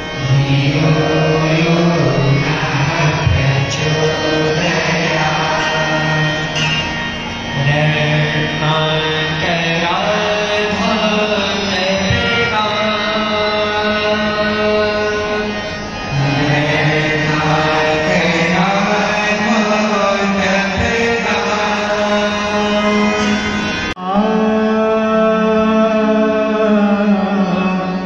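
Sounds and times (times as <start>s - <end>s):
devotional chant-like singing: 0.0s - 28.0s
harmonium long held notes: 0.0s - 28.0s.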